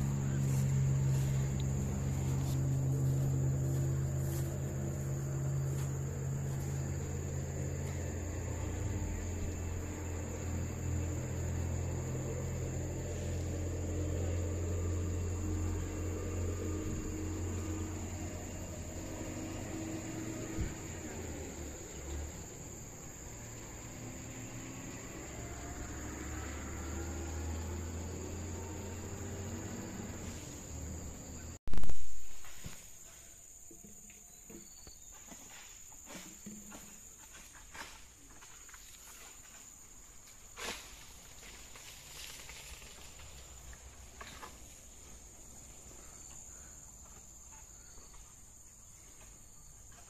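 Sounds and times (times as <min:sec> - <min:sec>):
insects trilling: 0:00.0 - 0:50.0.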